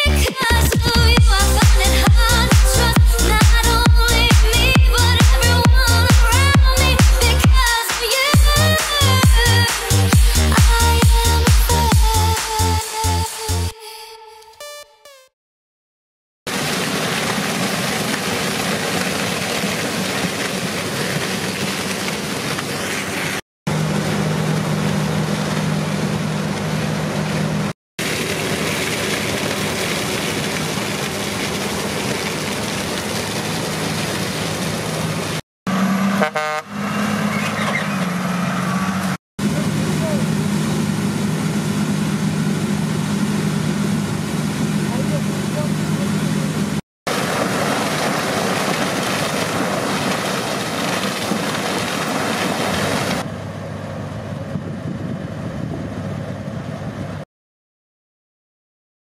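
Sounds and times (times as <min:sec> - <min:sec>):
combine harvester running: 0:16.6 - 0:57.2
vehicle horn toot: 0:36.1 - 0:37.0.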